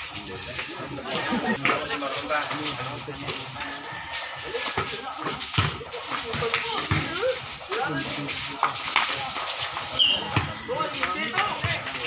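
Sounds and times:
chatter of people: 0:00.0 - 0:12.0
basketball bouncing on concrete: 0:04.6 - 0:08.0, 0:09.8 - 0:12.0.

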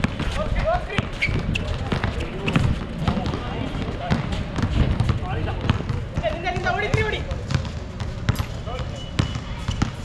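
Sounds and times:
basketball bouncing on court: 0:00.0 - 0:10.0.

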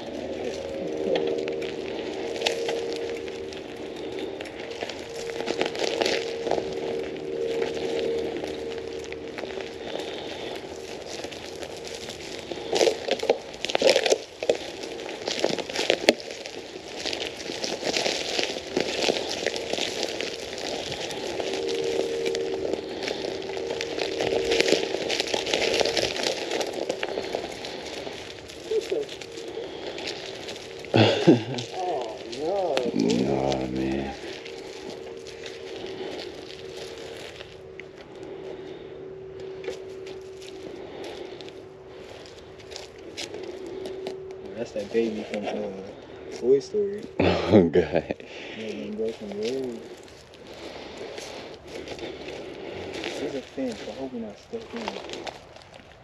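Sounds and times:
steady hum: 0:00.0 - 0:56.0
twigs and leaves crackling: 0:00.0 - 0:56.0.

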